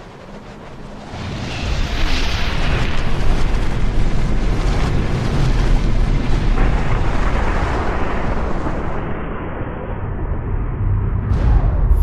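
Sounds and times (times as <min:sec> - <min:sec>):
low rumble and whoosh: 0:06.6 - 0:12.0.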